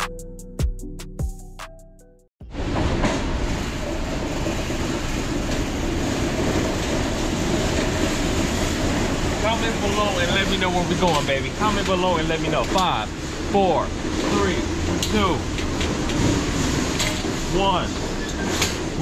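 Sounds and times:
metal carts rattling over concrete: 0:03.6 - 0:19.0.

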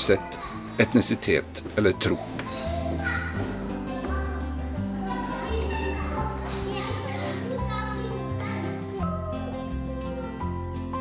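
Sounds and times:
young children chattering: 0:00.0 - 0:10.6
background music: 0:00.0 - 0:11.0.

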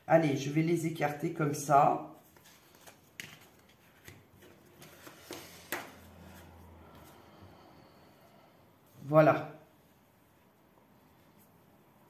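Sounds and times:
cards scraping on table: 0:02.4 - 0:06.5.

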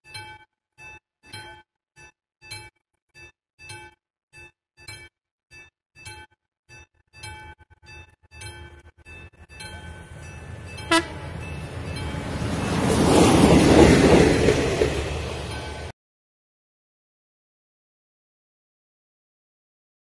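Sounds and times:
level-crossing warning bell: 0:07.2 - 0:15.9
railcar engine and wheels: 0:07.2 - 0:15.9
train horn: 0:10.8 - 0:11.7.

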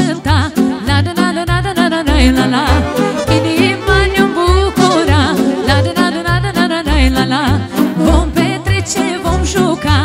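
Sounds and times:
accordion: 0:00.0 - 0:10.0
keyboard: 0:00.0 - 0:10.0
woman singing: 0:00.0 - 0:10.0
bass beat: 0:01.5 - 0:07.2
violin: 0:02.1 - 0:07.1
saxophone: 0:02.4 - 0:06.3.

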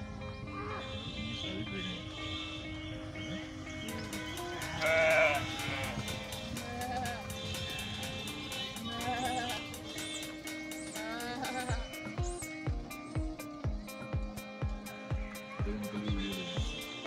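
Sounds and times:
background music of held notes: 0:00.0 - 0:17.0
steady ticking beat: 0:02.8 - 0:17.0
sheep or goat bleating: 0:04.0 - 0:10.1, 0:10.9 - 0:12.2.

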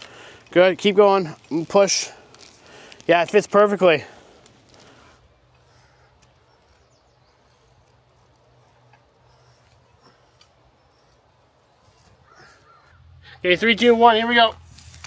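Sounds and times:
faint bird calls: 0:05.4 - 0:13.3.

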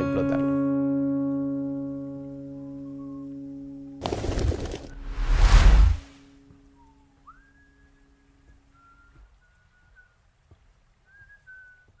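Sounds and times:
person whistling: 0:06.7 - 0:08.1, 0:08.7 - 0:10.2, 0:11.1 - 0:12.0.

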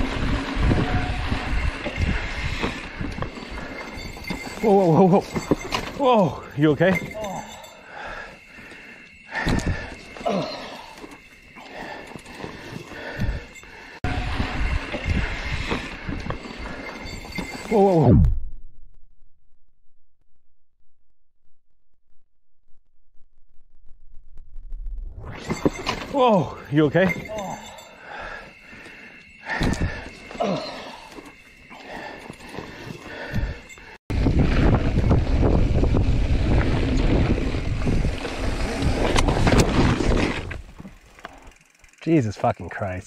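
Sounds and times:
bike knocking and rattling: 0:00.0 - 0:07.8, 0:25.4 - 0:43.0
bike scuffs and knocks on dirt: 0:05.2 - 0:06.0, 0:34.2 - 0:41.4.

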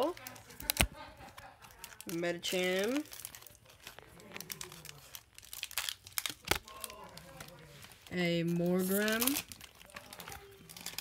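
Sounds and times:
foil wrapper crinkling: 0:00.0 - 0:11.0
trading cards being flipped: 0:05.6 - 0:11.0.

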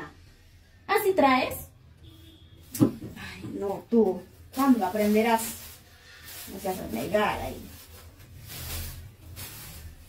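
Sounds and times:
plastic bag rustling: 0:02.9 - 0:10.0.

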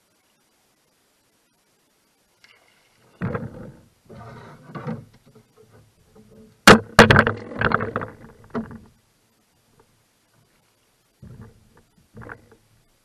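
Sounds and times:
sharp knocks in a canoe: 0:03.2 - 0:03.8, 0:06.7 - 0:08.9
bumping and rattling: 0:03.2 - 0:08.9, 0:11.2 - 0:12.7.

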